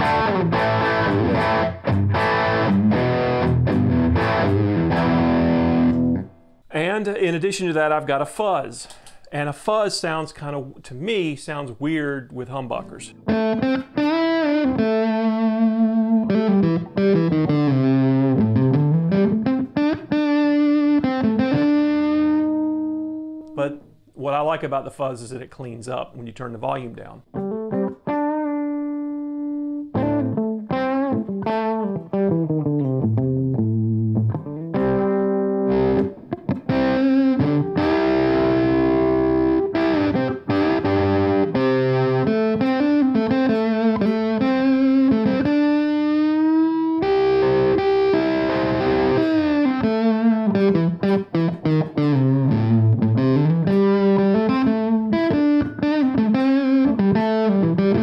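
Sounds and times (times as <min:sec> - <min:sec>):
fuzz electric guitar: 0:00.0 - 0:06.5, 0:13.2 - 0:23.5, 0:27.3 - 0:58.0.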